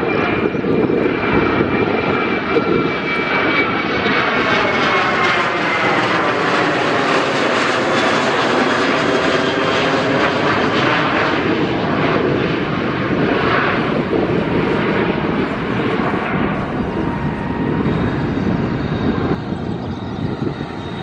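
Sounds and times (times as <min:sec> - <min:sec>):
jet airliner roaring overhead: 0:00.0 - 0:21.0.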